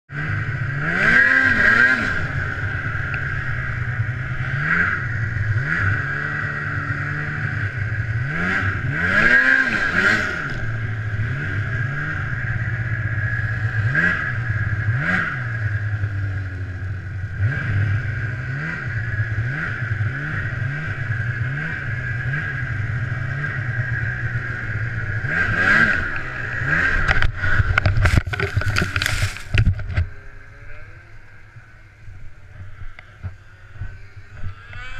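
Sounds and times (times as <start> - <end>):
snowmobile engine revving: 0.1 - 34.9
sharp knocks and clatter: 27.1 - 30.1.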